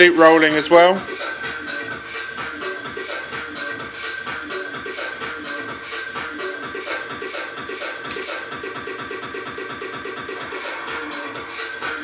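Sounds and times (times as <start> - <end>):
stuttering electronic dance beat: 0.2 - 12.0.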